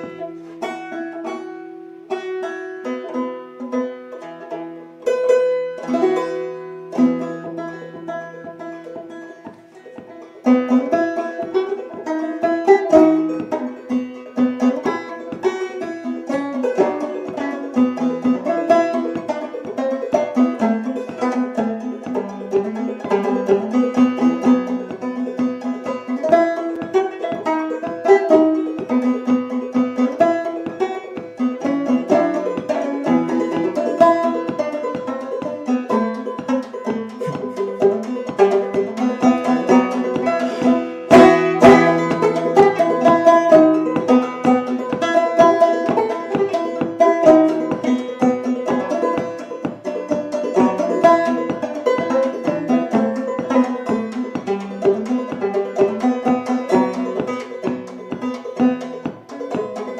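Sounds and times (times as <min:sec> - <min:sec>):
banjo folk tune: 0:00.0 - 0:59.9
plucked banjo notes: 0:00.0 - 0:59.9.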